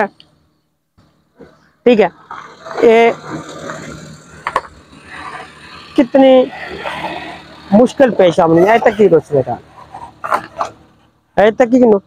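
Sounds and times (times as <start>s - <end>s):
pickup truck driving on gravel: 2.2s - 11.1s.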